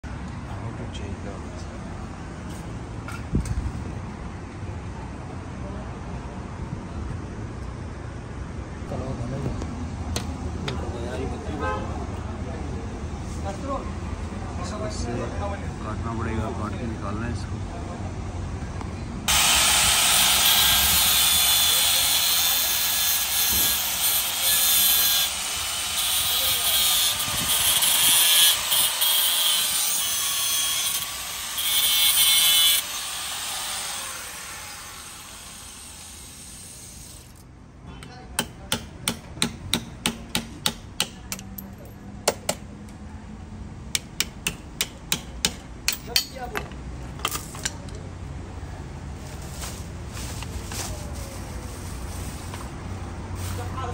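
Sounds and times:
power cutter grinding chain: 0:19.3 - 0:37.4.

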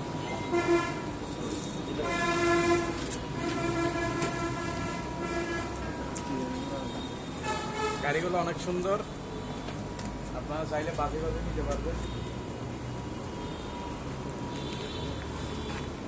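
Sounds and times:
vehicle horn blasts: 0:00.2 - 0:01.2, 0:01.9 - 0:06.0, 0:06.8 - 0:08.2.

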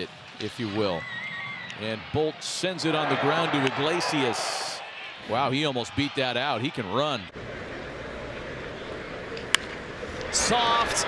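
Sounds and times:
baseball bat crack: 0:09.3 - 0:09.9.

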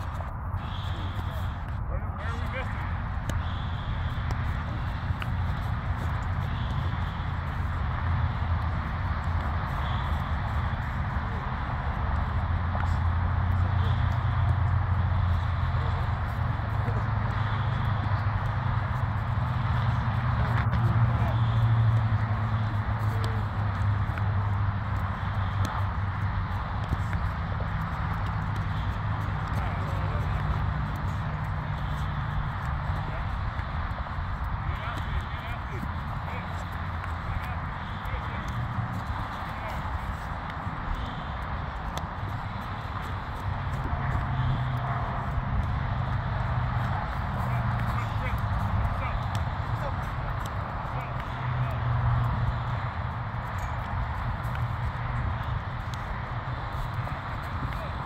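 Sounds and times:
faint voices: 0:00.0 - 0:58.0.

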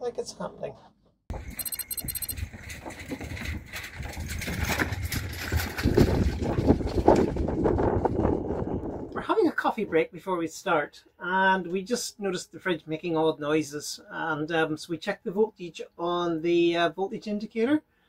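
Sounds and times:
trolley wheels rolling on wooden decking: 0:02.4 - 0:09.0.

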